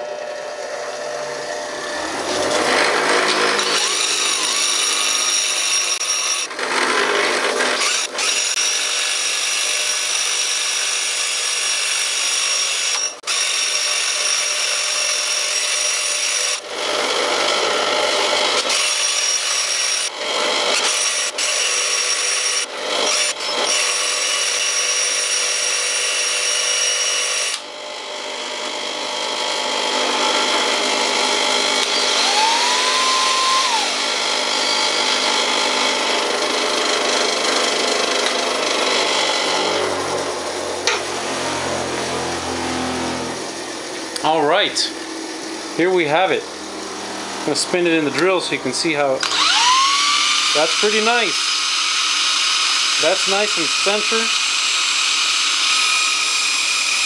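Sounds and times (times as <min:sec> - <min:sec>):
cordless drill whine: 0:00.0 - 0:40.9, 0:49.2 - 0:57.0
bench grinder grinding steel rod: 0:00.0 - 0:57.0.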